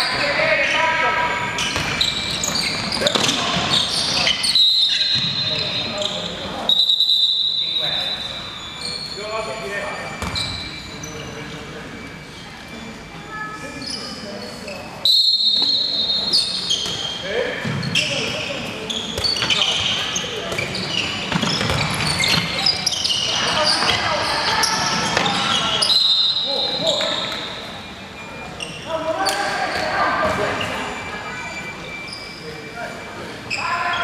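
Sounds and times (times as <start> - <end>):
sharp high squeals: 0.0 - 34.0
sneakers squeaking: 0.0 - 34.0
ball bouncing on court: 1.6 - 4.4, 5.1 - 5.4, 10.2 - 10.7, 16.8 - 18.4, 19.1 - 25.6, 29.2 - 30.7.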